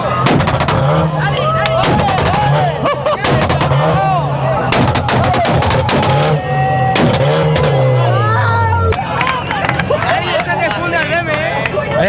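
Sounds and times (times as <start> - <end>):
car engine revving: 0.0 - 11.3
exhaust pops and bangs: 0.1 - 7.9.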